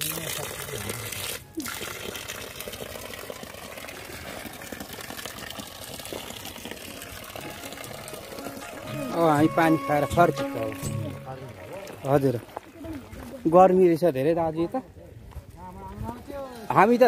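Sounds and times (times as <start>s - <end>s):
water running from tap: 0.0s - 10.9s.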